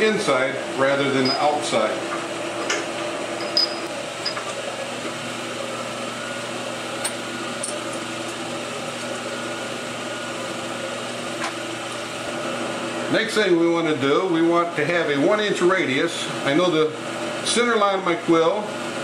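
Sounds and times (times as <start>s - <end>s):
converter humming drone: 0.0s - 16.1s.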